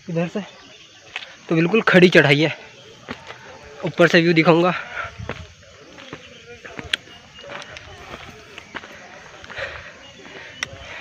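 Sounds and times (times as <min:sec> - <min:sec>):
footsteps on trail: 0:00.5 - 0:11.0
person breathing: 0:08.8 - 0:11.0.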